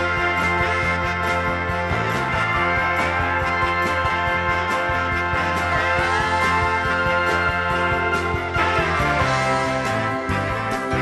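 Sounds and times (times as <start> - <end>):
bass: 0.0 - 11.0
drum beat: 0.0 - 11.0.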